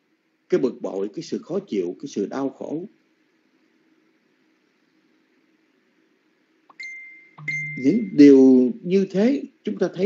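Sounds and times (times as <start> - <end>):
steady high-pitched beep: 6.7 - 8.4.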